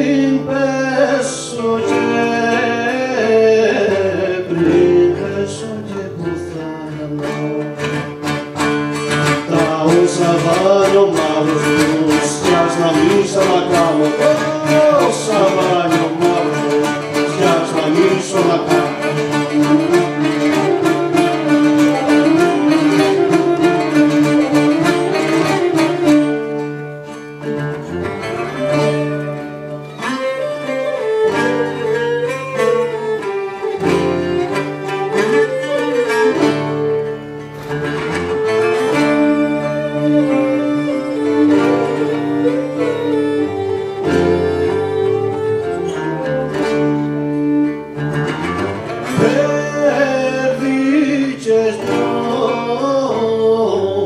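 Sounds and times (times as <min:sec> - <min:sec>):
lutes plucking and strumming: 0:00.0 - 0:54.0
bowed lyra melody: 0:06.2 - 0:54.0.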